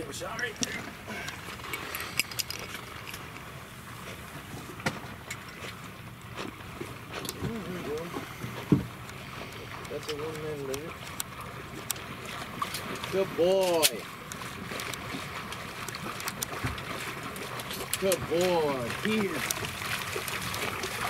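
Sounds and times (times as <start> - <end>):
water sloshing and splashing: 0.0 - 21.0.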